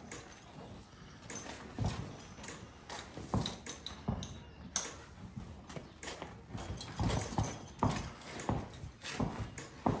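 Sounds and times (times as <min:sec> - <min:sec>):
hooves thudding on barn floor: 0:00.0 - 0:10.0.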